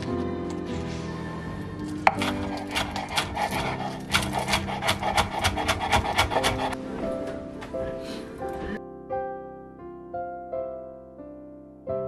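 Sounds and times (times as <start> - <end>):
knife chopping on wooden board: 2.1 - 6.8.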